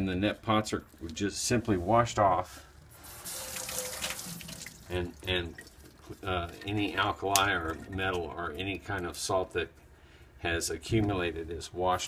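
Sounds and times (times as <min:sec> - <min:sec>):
water splashing into steel sink: 0:03.1 - 0:08.0.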